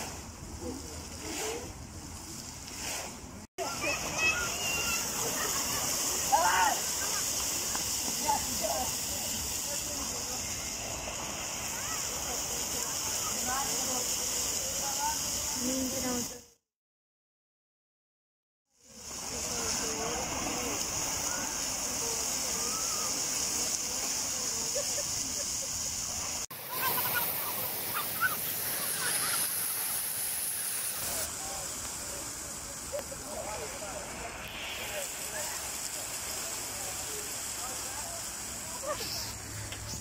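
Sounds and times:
fountain water jets splashing: 0.0s - 16.5s, 18.8s - 40.0s
faint voices: 3.6s - 16.4s, 18.8s - 30.2s, 30.8s - 40.0s.

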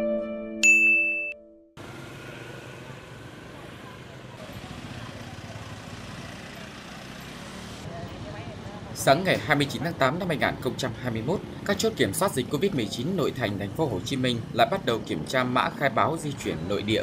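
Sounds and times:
street traffic hum: 1.8s - 17.0s.

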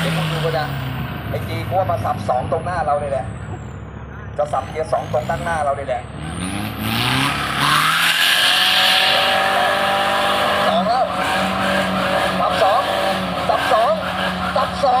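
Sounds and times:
diesel engine revving hard: 0.0s - 2.2s, 4.9s - 15.0s.

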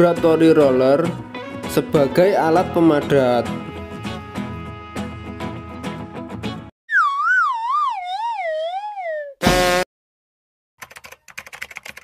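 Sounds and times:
background music: 0.0s - 6.7s
falling wobbling whistle tone: 6.9s - 9.4s
keyboard typing clicks: 10.8s - 12.0s.

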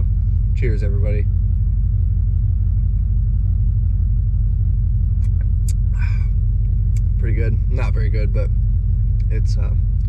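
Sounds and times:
van engine idling: 0.0s - 10.0s.

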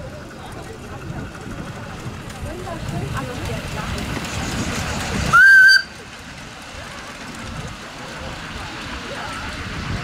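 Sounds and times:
miniature train rumbling on track: 0.0s - 10.0s
steam locomotive whistle: 5.3s - 6.0s.

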